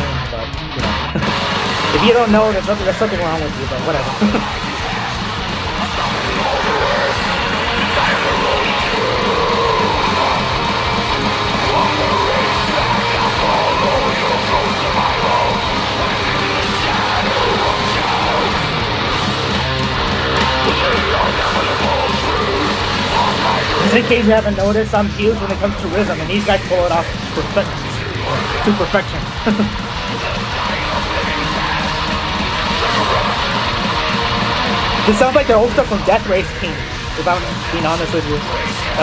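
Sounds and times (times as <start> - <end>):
distorted electric guitars: 0.0 - 39.0
drums: 0.0 - 39.0.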